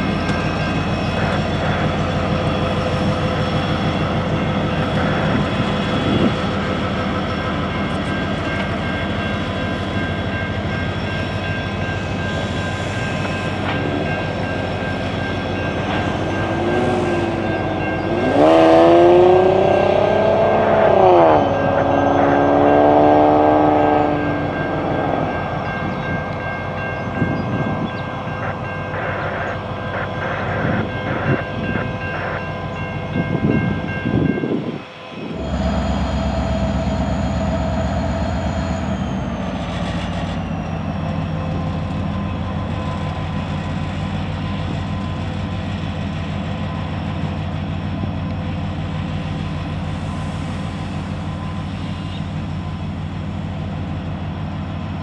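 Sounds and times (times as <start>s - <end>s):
diesel locomotives running: 0.0s - 55.0s.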